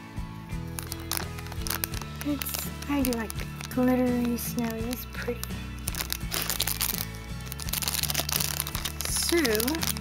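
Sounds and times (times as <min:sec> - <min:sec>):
music with low held tones: 0:00.0 - 0:10.0
plastic sleeve crinkling: 0:00.6 - 0:10.0.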